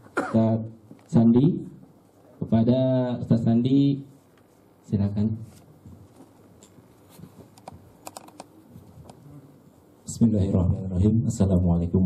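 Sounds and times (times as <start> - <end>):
microphone handling clicks and knocks: 5.6 - 9.2.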